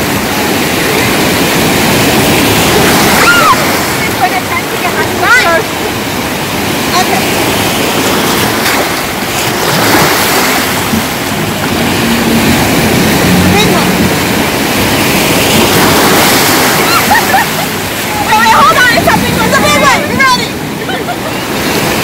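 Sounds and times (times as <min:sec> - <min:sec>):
sea surf washing over rocks: 0:00.0 - 0:22.0.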